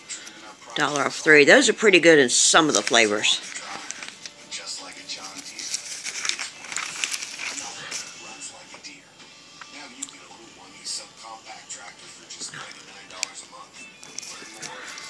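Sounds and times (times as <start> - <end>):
person speaking on television: 0.0 - 6.7, 7.4 - 15.0
television commercial music: 0.0 - 15.0
paper pages rustling: 2.6 - 8.6, 14.0 - 15.0.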